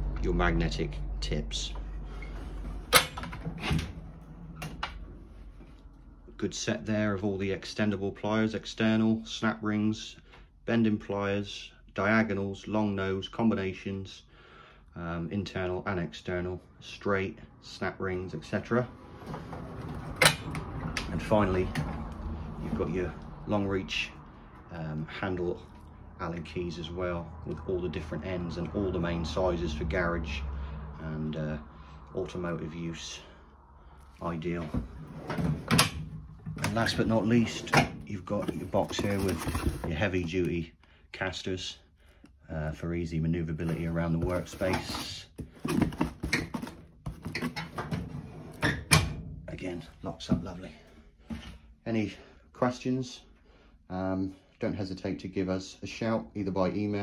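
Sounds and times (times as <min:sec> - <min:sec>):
metal drawers rolling on runners: 0:19.1 - 0:22.0, 0:34.8 - 0:39.4.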